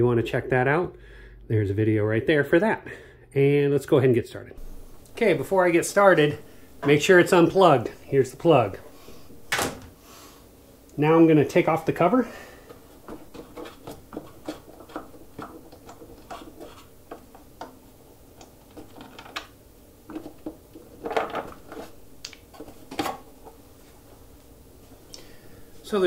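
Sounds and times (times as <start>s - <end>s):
plastic clatter: 20.1s - 23.2s.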